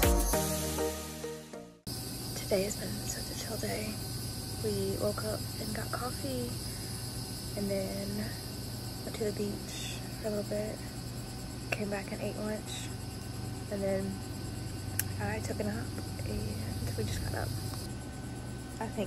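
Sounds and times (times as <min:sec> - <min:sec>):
insects chirring: 0:01.9 - 0:19.0.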